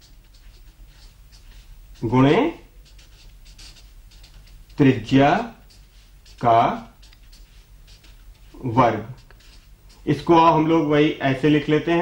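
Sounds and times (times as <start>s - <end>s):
marker scratching on paper: 0.0s - 12.0s.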